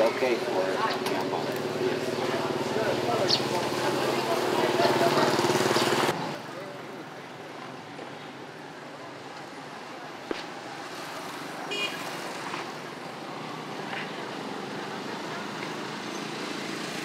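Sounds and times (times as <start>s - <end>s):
motorbikes passing: 0.0s - 17.0s
street traffic hum: 0.0s - 17.0s.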